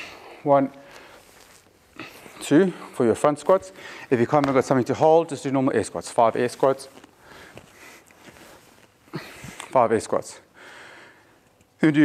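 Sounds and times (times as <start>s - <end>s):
small movement sounds: 0.6s - 4.8s, 6.1s - 10.0s
faint breaths: 3.7s - 4.2s, 7.2s - 9.8s, 10.5s - 11.5s.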